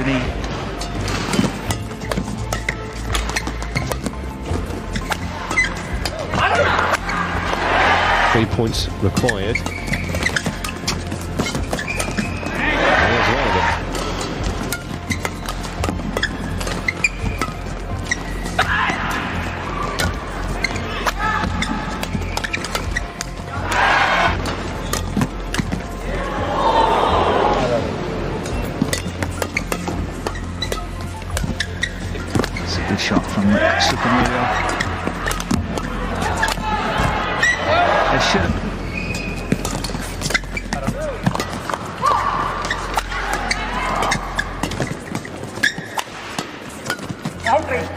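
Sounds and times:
shoes squeaking on court: 0:00.0 - 0:07.8, 0:08.5 - 0:13.0, 0:13.8 - 0:23.6, 0:24.2 - 0:26.1, 0:28.4 - 0:47.9
rackets hitting shuttlecock: 0:00.8 - 0:07.7, 0:09.1 - 0:12.5, 0:13.7 - 0:25.8, 0:28.4 - 0:37.6, 0:39.0 - 0:47.6
arena crowd noise: 0:05.1 - 0:09.1, 0:12.3 - 0:14.5, 0:23.2 - 0:24.8, 0:25.4 - 0:28.5, 0:32.6 - 0:40.1, 0:40.7 - 0:45.0.

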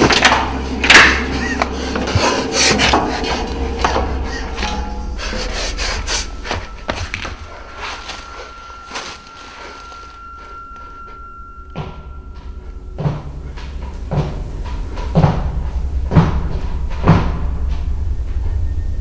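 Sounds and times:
footsteps on metal staircase: 0:00.0 - 0:18.1
steady high tone: 0:01.6 - 0:13.8.

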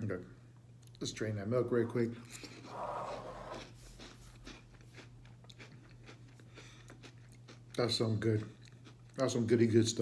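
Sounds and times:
quiet chewing: 0:02.2 - 0:09.4
person slurping cereal: 0:02.3 - 0:04.3.

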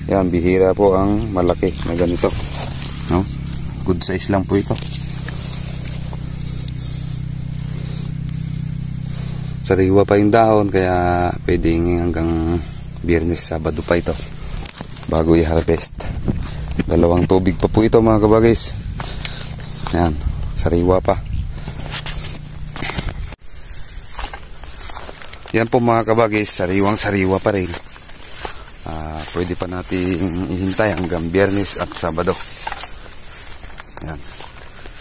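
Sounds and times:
engine humming: 0:00.0 - 0:35.0
rustling of movement: 0:00.0 - 0:35.0
wind rumble on microphone: 0:13.7 - 0:23.4.

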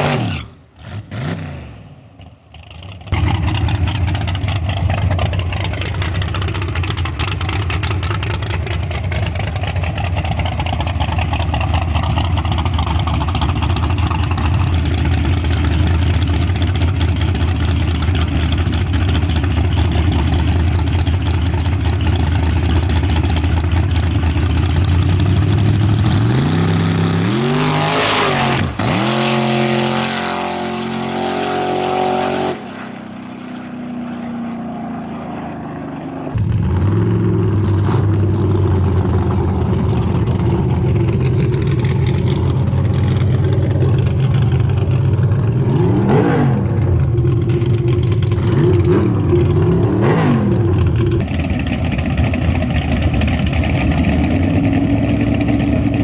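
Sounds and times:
car engine rumbling close by: 0:00.0 - 0:56.0
drag car engines revving and launching: 0:00.0 - 0:56.0.

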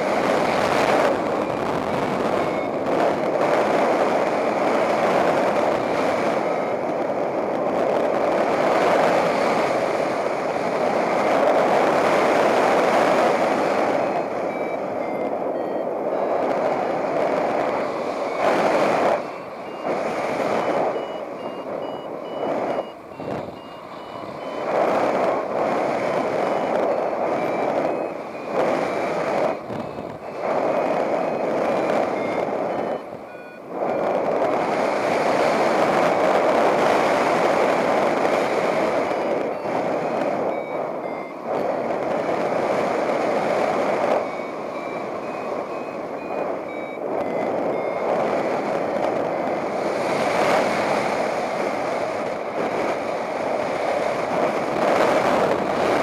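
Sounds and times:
variometer beeping: 0:00.0 - 0:56.0.

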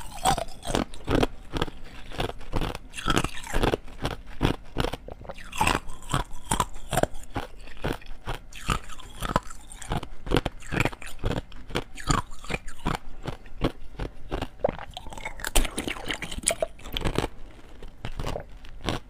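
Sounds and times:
ice crunching between teeth: 0:00.0 - 0:19.0.

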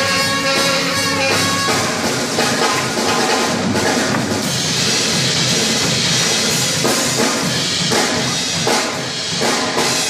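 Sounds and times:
drum kit: 0:00.0 - 0:10.0
swing jazz band playing: 0:00.0 - 0:10.0.

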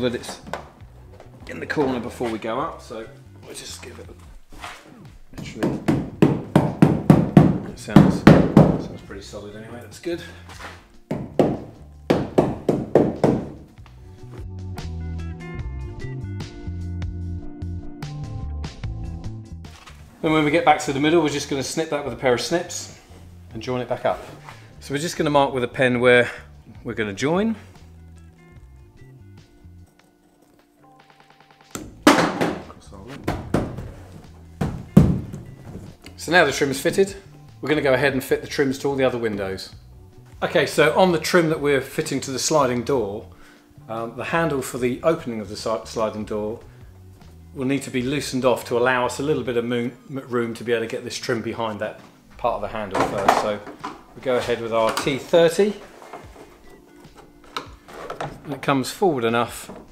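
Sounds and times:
light background music: 0:00.0 - 0:59.9.

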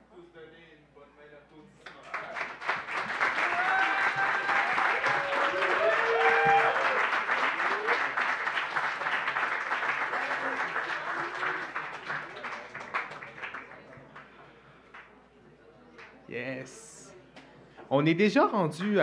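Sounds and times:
audience applauding: 0:01.9 - 0:14.4
voices cheering: 0:03.2 - 0:08.2.

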